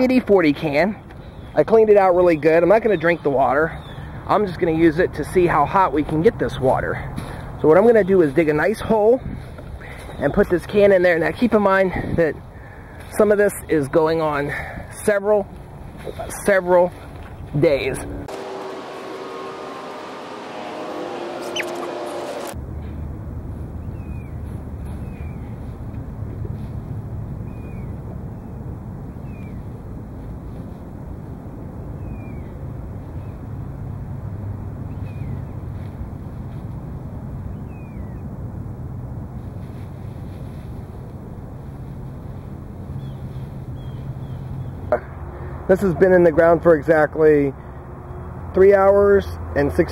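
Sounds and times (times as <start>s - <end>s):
low rumble: 17.4s - 23.9s
held tones: 17.6s - 22.6s
high falling chirps: 17.7s - 22.6s.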